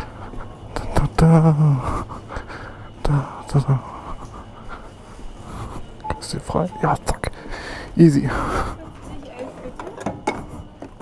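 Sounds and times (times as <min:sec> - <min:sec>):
person breathing heavily: 0:00.0 - 0:06.1, 0:07.2 - 0:09.0.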